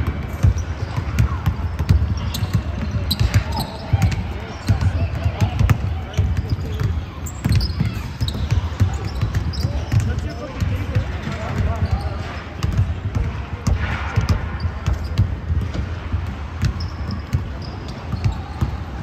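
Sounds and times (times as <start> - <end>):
basketballs bouncing on wooden floor: 0.0 - 19.0.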